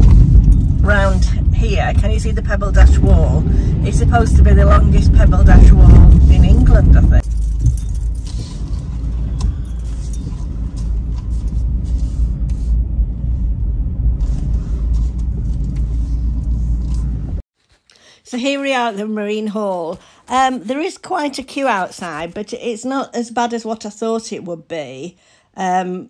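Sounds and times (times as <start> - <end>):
rattles and clicks: 0.0 - 2.3, 5.6 - 11.8
road rumble inside car: 0.0 - 17.4
person's voice: 0.8 - 7.2.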